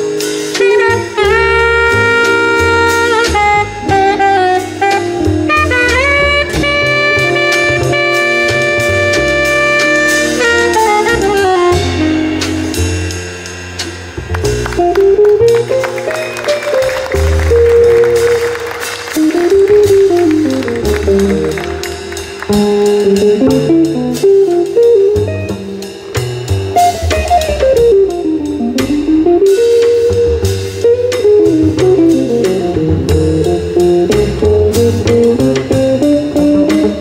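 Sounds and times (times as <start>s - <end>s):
double bass: 0.0s - 37.0s
drum kit with cymbals: 0.0s - 37.0s.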